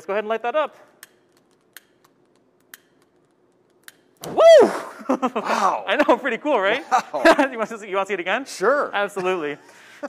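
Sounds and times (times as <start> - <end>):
stick lighter trigger clicks: 3.8 - 4.4
person shouting: 4.3 - 4.9.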